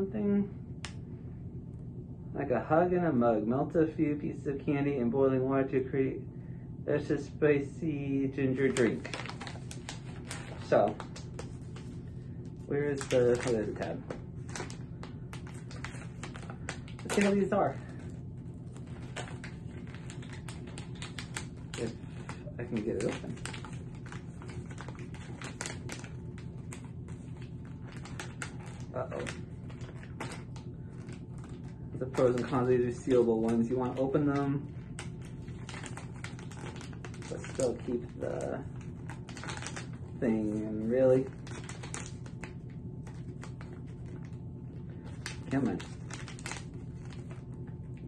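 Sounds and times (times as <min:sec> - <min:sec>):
low steady hum: 0:00.0 - 0:48.0
plastic pouch crinkling: 0:08.5 - 0:48.0.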